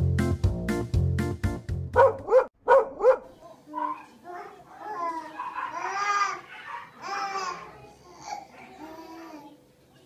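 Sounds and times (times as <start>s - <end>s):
dog barking: 2.0s - 7.1s.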